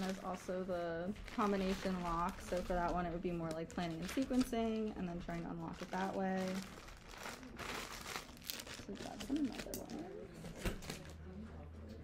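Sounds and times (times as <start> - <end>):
plastic bag crinkling: 0.0 - 10.1.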